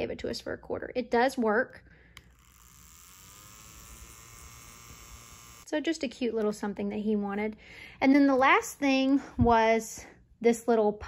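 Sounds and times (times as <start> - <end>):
electric desk fan running: 2.2 - 5.7.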